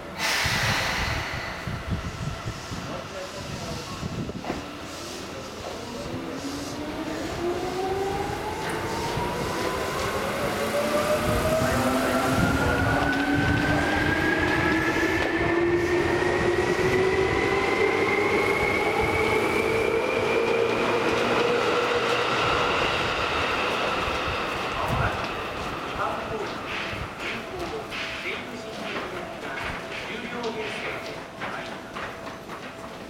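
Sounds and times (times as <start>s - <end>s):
train rumble: 0.0s - 33.0s.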